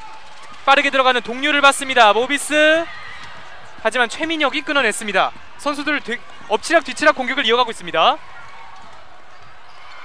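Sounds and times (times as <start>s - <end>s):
gym background noise: 0.0s - 10.0s.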